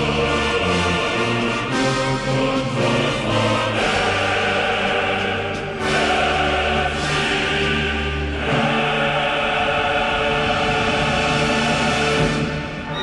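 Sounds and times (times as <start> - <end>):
choir singing chords: 0.0 - 13.0
musical accompaniment: 0.0 - 13.0.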